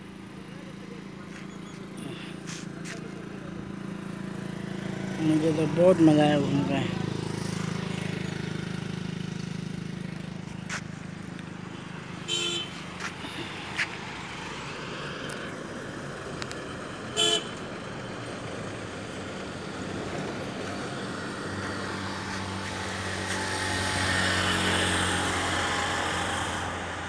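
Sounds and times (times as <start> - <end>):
traffic hum: 0.0 - 27.0
vehicle engine passing: 0.8 - 17.0, 17.8 - 27.0
vehicle horn toots: 12.2 - 12.8, 17.2 - 17.6.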